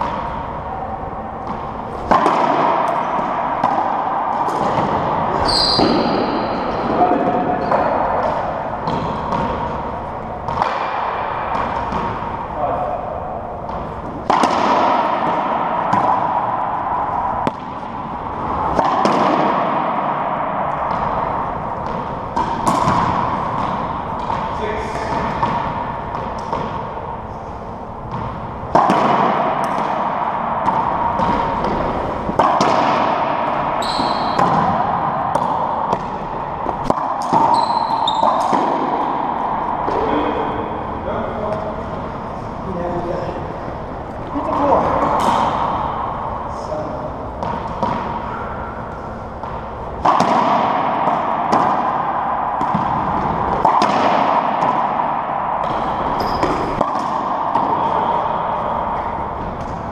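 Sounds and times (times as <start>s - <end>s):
players' voices: 0.0s - 18.8s, 23.9s - 26.0s, 37.9s - 50.1s
racquetball ball strikes: 0.0s - 59.9s.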